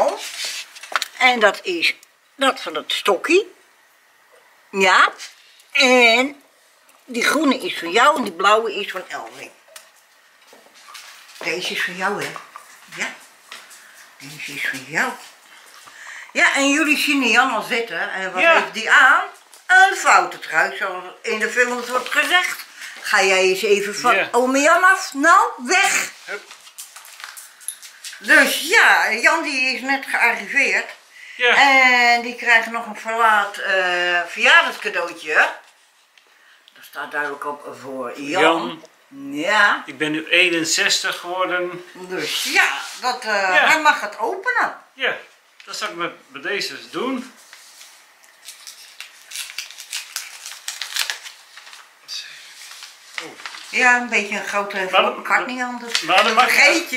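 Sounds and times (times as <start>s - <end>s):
paper envelope tearing: 47.5s - 53.9s.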